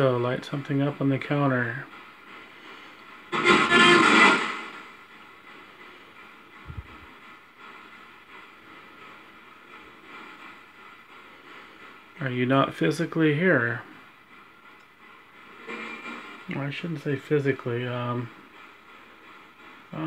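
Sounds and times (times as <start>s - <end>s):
radio static hiss: 3.3s - 4.8s
garbled radio burst: 3.4s - 4.6s.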